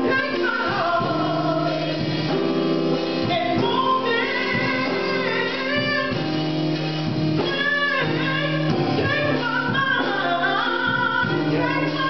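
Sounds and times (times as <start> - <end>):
woman singing gospel song: 0.0 - 6.4, 7.4 - 12.0.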